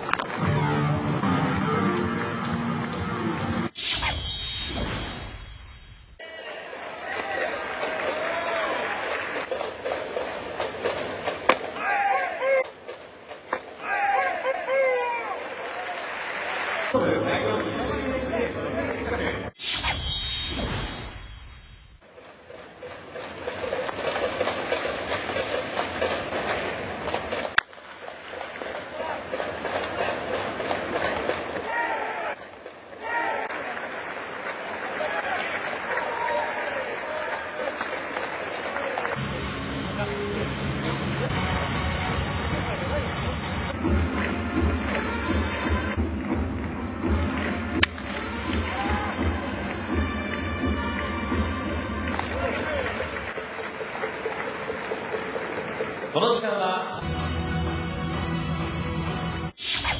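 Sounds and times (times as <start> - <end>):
crowd and voice noise: 6.2 - 19.6, 22.0 - 57.1.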